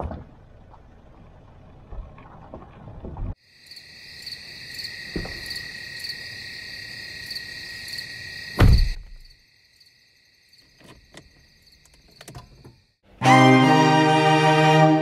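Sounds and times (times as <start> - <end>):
crickets chirping: 3.4 - 13.0.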